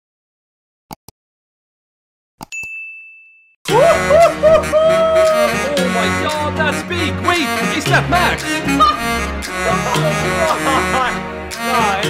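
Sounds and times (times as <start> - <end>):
notification bell ding: 2.5 - 3.6
loud music: 3.7 - 12.0.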